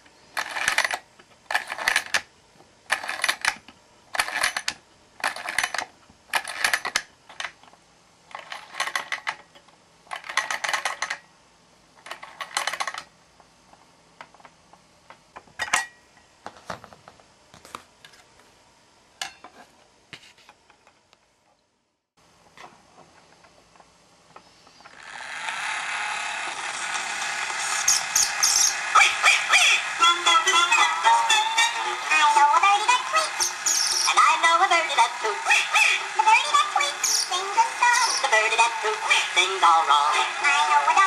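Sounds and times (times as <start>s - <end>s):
record surface hiss and crackles: 10.8s - 25.0s
gramophone tune: 27.8s - 41.0s.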